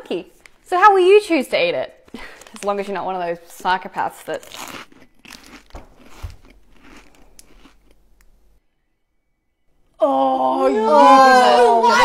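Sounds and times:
crunching wafer bar: 2.1s - 8.5s.

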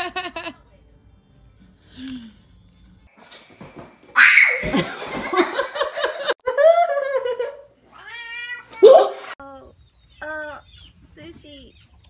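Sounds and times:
cat meowing: 7.9s - 9.2s.

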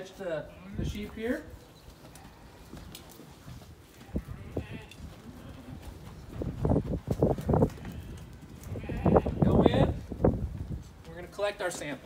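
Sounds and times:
sheep bleating: 4.0s - 5.8s, 7.7s - 9.7s.

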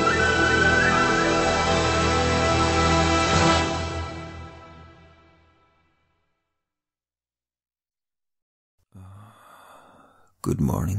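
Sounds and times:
man sighing: 8.9s - 10.4s.

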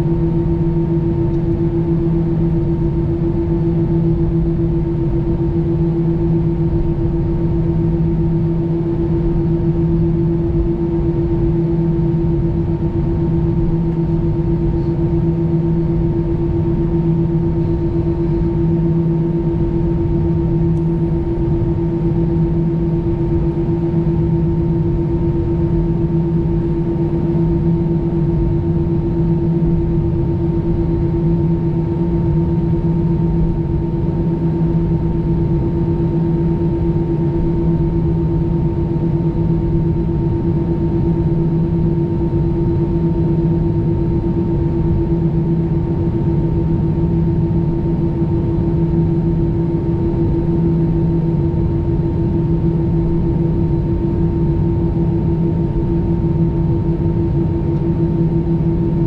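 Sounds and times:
aircraft cabin engine drone: 0.0s - 59.0s.

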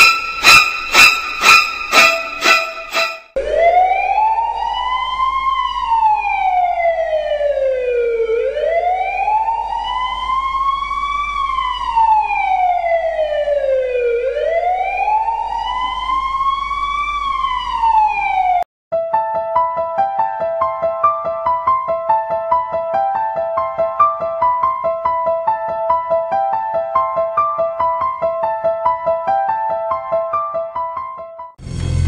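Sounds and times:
piano music: 0.0s - 3.5s, 19.0s - 32.0s
emergency siren wailing: 0.0s - 18.6s.

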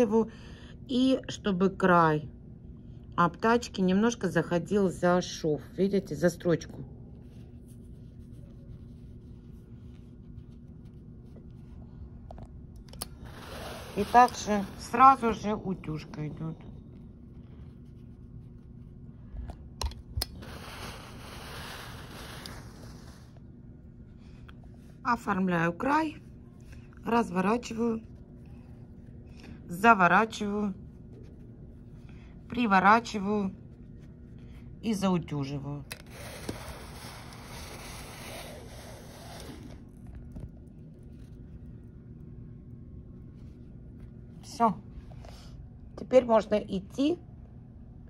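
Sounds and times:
low room hum: 0.0s - 48.0s
iron rubbing over fabric: 7.2s - 12.0s, 12.8s - 19.2s, 20.2s - 23.5s, 27.1s - 40.4s
clothes iron steam hiss: 13.0s - 15.3s, 20.3s - 23.2s.

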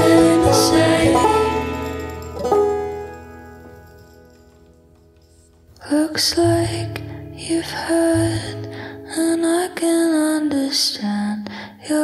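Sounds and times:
banjo chord ringing: 0.0s - 5.5s.

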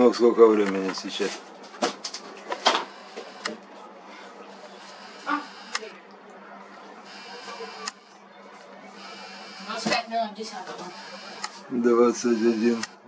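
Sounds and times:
faint hum and hiss: 0.0s - 13.0s
camera clicks: 5.6s - 5.9s.

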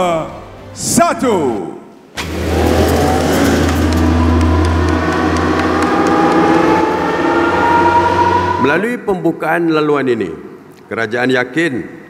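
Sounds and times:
train accelerating rumble: 2.2s - 8.8s
rising whine: 2.2s - 9.0s.

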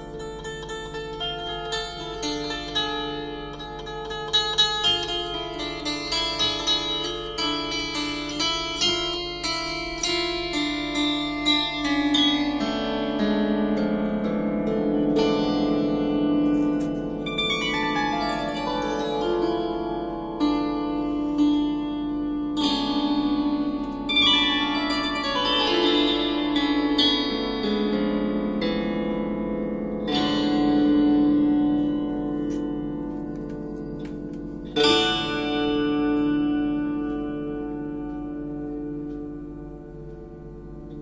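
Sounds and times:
strummed metal strings ringing: 0.0s - 41.0s.

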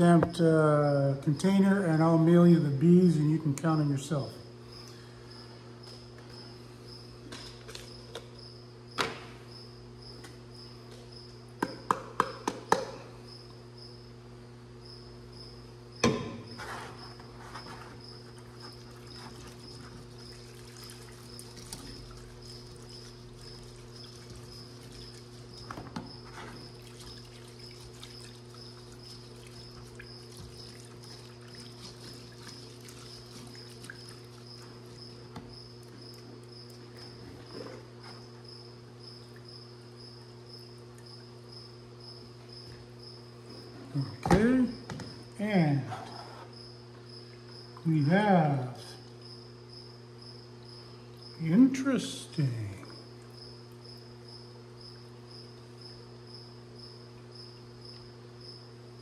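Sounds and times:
steady low hum: 0.0s - 59.0s
sharp knocks: 16.0s - 16.5s.

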